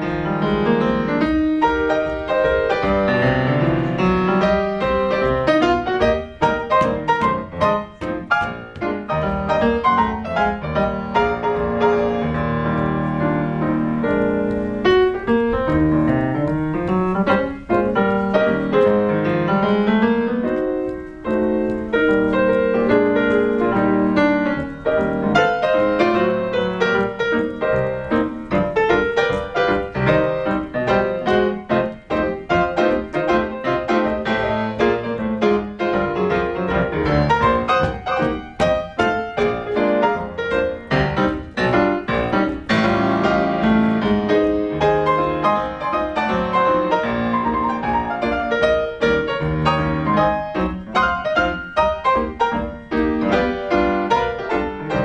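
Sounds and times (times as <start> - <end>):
grand piano stride playing: 0.0 - 55.0.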